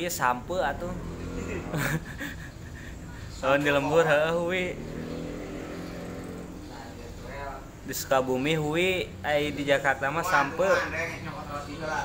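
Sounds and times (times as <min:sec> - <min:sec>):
steady engine hum: 0:00.0 - 0:12.0.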